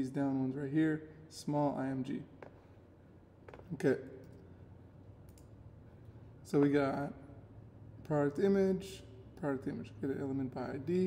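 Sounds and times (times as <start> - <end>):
low steady room hum: 0.0 - 11.0
computer mouse clicks: 5.2 - 5.5.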